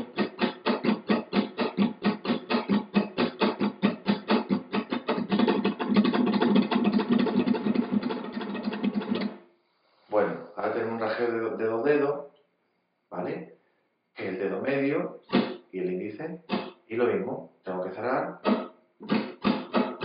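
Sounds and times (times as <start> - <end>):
flamenco guitar strumming: 0.0 - 9.4, 15.3 - 15.6, 16.5 - 16.8, 18.4 - 20.0.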